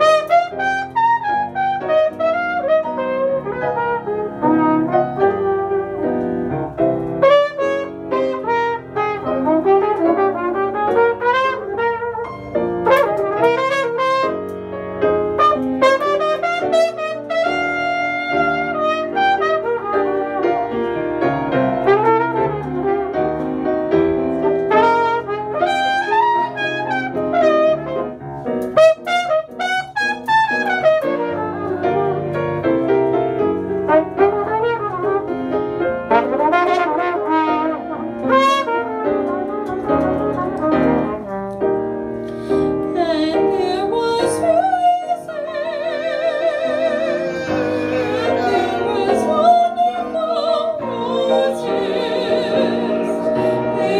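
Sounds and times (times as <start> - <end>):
piano accompaniment: 0.0 - 53.9
trumpet playing jazz ballad: 0.0 - 53.9.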